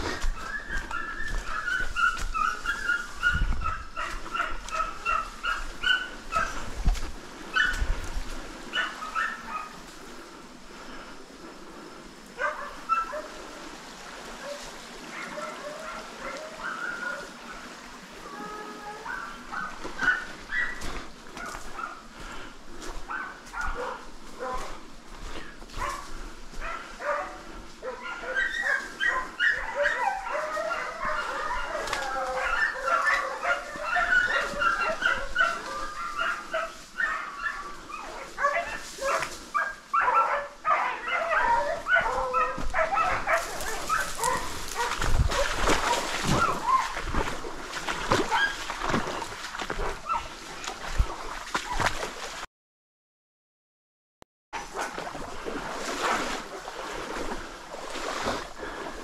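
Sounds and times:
dogs barking and yelping: 0.0 - 6.8, 7.5 - 8.1, 8.7 - 9.9, 12.4 - 13.5, 14.2 - 17.8, 18.4 - 22.2, 22.8 - 50.7
footsteps crackling through brush: 0.0 - 10.3, 18.7 - 40.1, 40.7 - 52.4.

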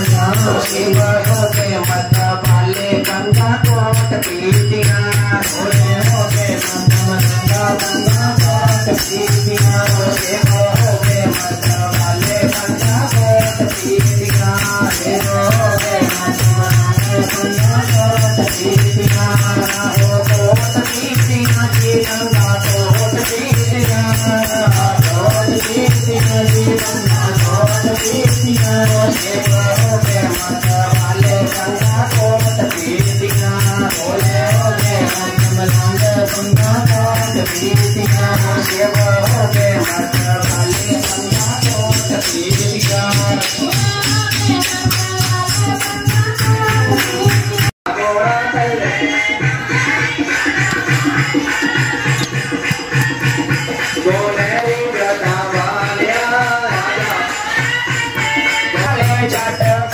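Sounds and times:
barrel drum beat: 0.0 - 47.8
person singing into a microphone: 0.0 - 59.9.

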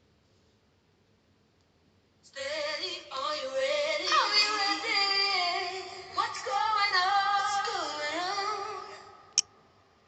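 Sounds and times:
song with woman singing: 2.3 - 9.2.

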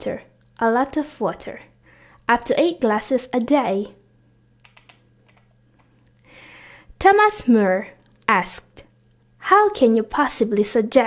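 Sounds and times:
woman drawing breath: 6.2 - 7.0.

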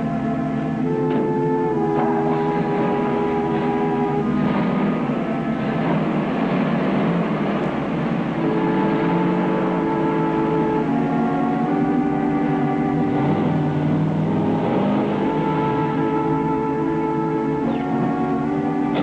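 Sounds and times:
background music in long chords: 0.0 - 19.0
truck engine running: 0.0 - 19.0.

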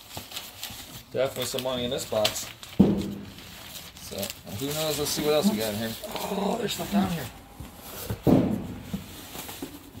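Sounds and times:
handling thump in cardboard box: 8.0 - 10.0.

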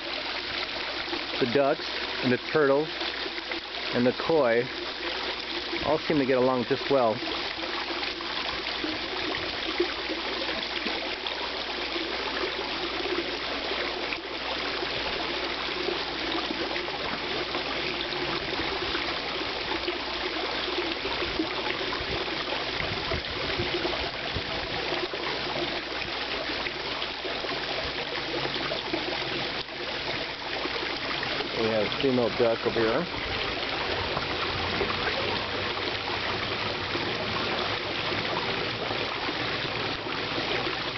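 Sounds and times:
water trickling into a pond: 0.0 - 40.9.

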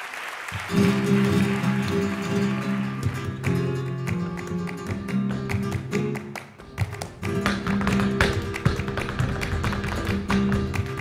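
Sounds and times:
hand claps: 0.0 - 11.0
flamenco guitar: 0.5 - 11.0
dancer's shoes striking floor: 3.0 - 11.0.

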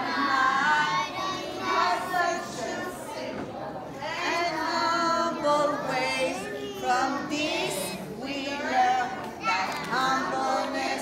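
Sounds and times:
young children singing: 0.0 - 11.0.

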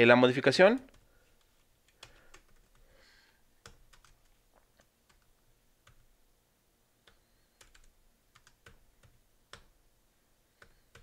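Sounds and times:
typing on computer keyboard: 1.9 - 2.9, 3.6 - 6.1, 7.0 - 9.7, 10.6 - 11.0.

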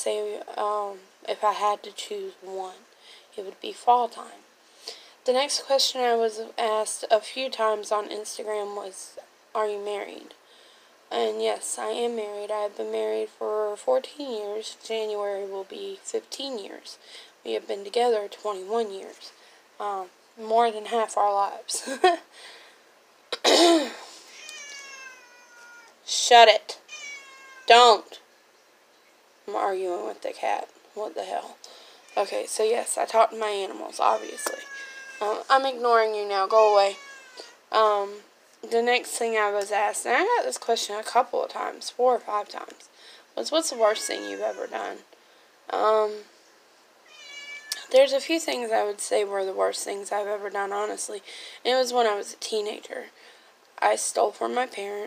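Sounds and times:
cat meowing: 24.3 - 26.0, 26.8 - 27.7, 34.0 - 35.5, 36.6 - 37.6, 43.7 - 44.8, 47.0 - 47.9.

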